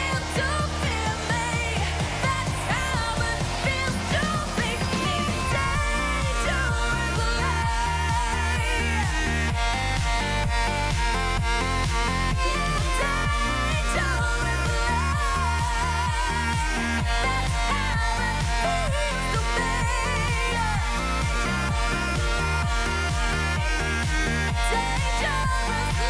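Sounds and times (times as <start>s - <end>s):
electronic dance beat: 0.0s - 26.0s
woman singing into a microphone: 0.0s - 26.0s.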